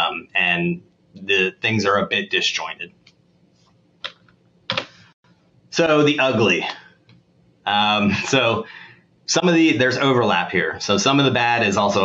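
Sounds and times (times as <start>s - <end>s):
computer keyboard key presses: 4.0s - 4.9s.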